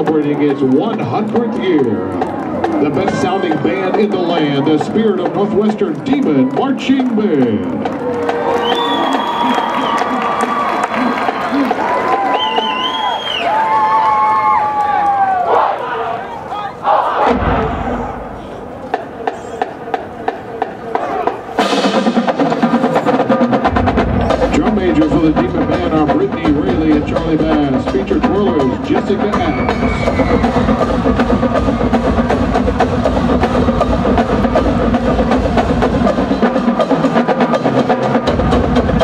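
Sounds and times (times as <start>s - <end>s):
drumline playing cadence: 0.0s - 39.0s
stadium crowd cheering: 0.0s - 39.0s
drum hit: 17.2s - 19.4s, 21.6s - 36.9s.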